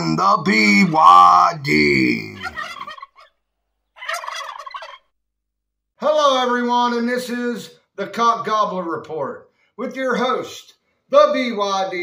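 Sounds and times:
turkey gobbling: 2.4 - 5.2.

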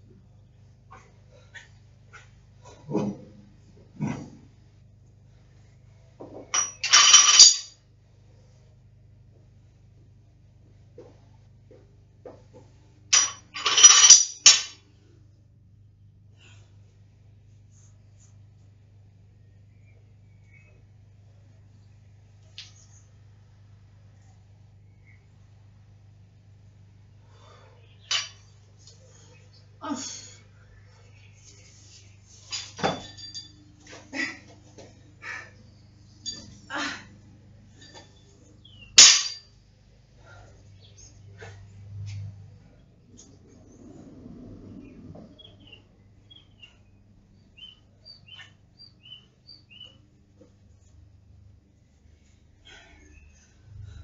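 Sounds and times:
barbell plates clinking and rattling: 6.2 - 7.8, 13.1 - 14.8, 28.1 - 28.6, 32.4 - 35.0, 36.1 - 36.7, 37.7 - 38.3, 38.9 - 39.6.

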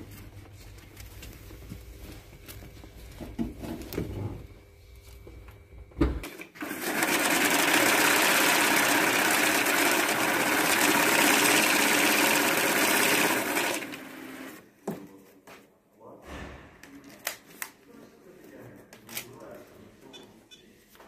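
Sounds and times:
banknote counting machine whirring: 6.3 - 14.6.

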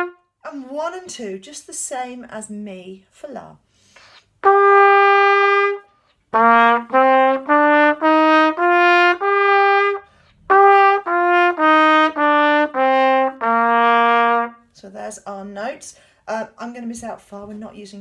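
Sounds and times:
plastic trumpet playing scale: 0.0 - 0.3, 4.4 - 14.6.

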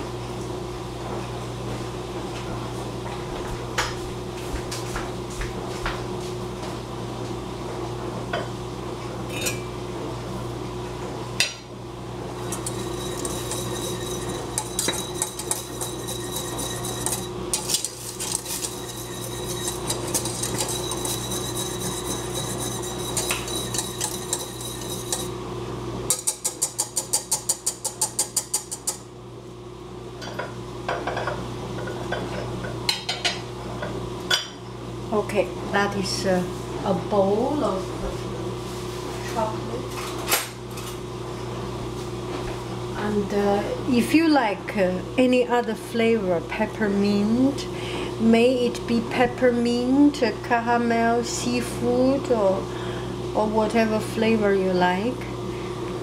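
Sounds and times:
whisk scraping metal saucepan: 12.4 - 25.4.

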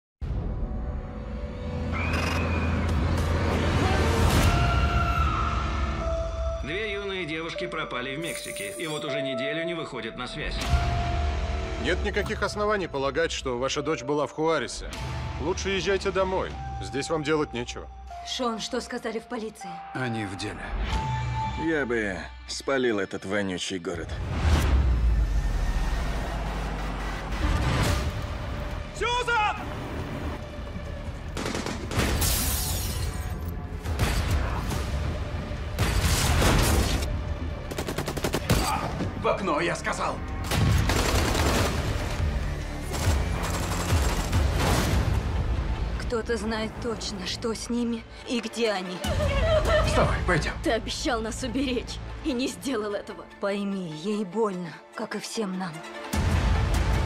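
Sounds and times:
rapid automatic gunfire: 37.7 - 38.6, 40.6 - 42.2, 42.8 - 44.6.

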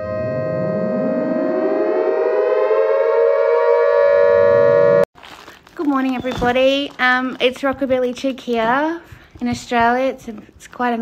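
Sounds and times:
siren-like held tone: 0.0 - 5.1
tone sweeping upward: 0.0 - 5.1.

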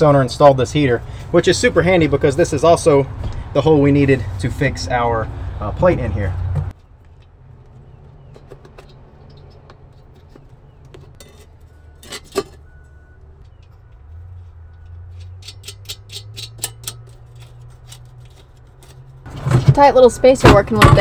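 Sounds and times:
metal plate and bolts clicking: 14.8 - 19.2.

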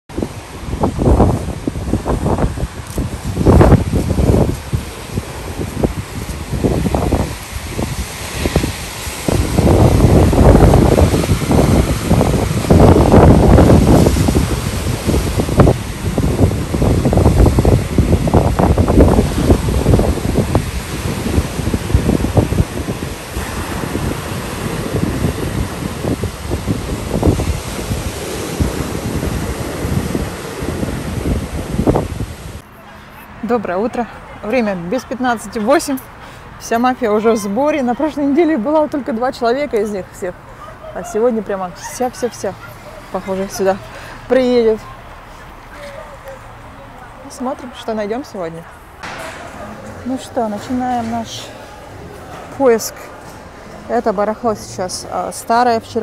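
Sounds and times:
surf breaking on beach: 0.1 - 33.0, 49.0 - 53.9
wind buffeting microphone: 0.1 - 56.0.

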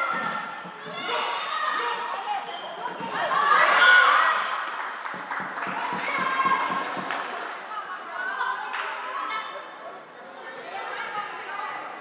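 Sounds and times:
players shouting and calling: 0.0 - 4.8, 5.6 - 12.0
play on court floor: 0.0 - 12.0.

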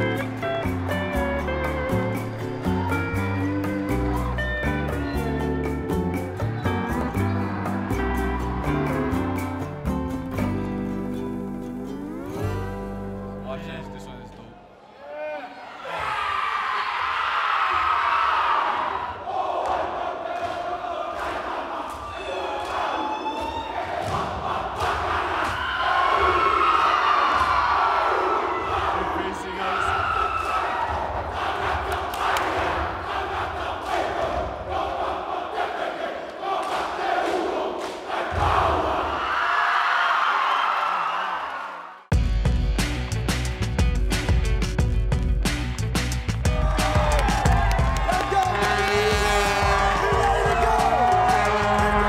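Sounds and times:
cheering: 2.5 - 4.7, 6.4 - 9.4, 14.7 - 42.1, 46.4 - 52.0.

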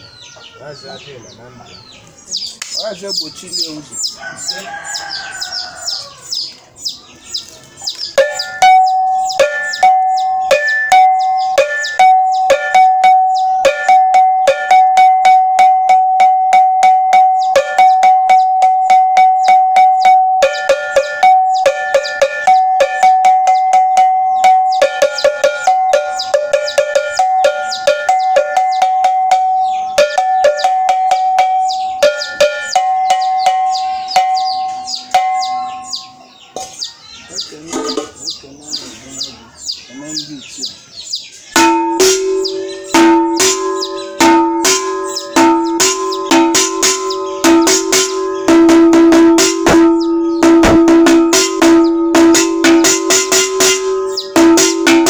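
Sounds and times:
metal bell struck rapidly: 8.2 - 36.2, 41.6 - 55.0.

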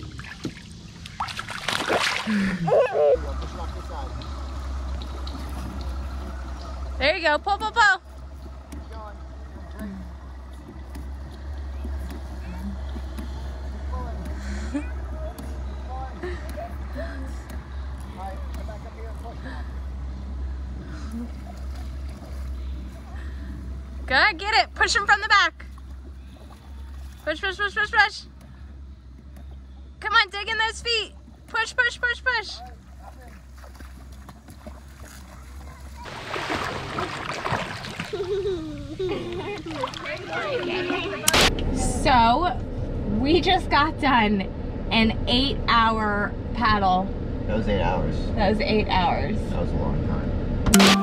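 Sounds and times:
child wading in shallow water: 0.0 - 30.0, 31.1 - 41.5
kayak paddle splashing: 0.0 - 41.5
steady low rumble: 0.0 - 51.0.

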